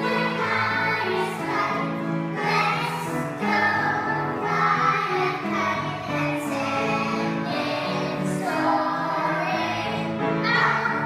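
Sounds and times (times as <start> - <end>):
children singing: 0.0 - 11.0.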